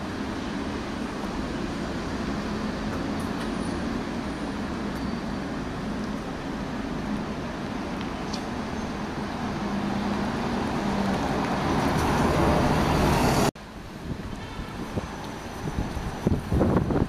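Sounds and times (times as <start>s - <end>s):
bus engine passing by: 0.0s - 13.6s
street traffic: 0.0s - 17.0s
wind on microphone: 13.9s - 17.0s.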